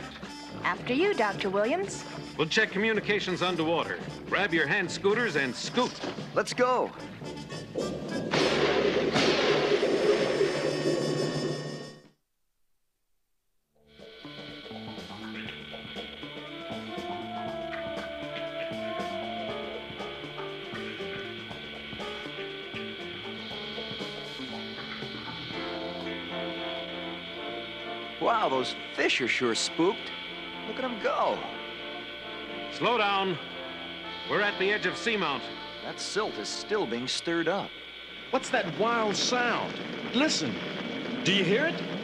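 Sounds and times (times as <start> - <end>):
music with held tones: 0.0 - 10.5, 13.8 - 42.0.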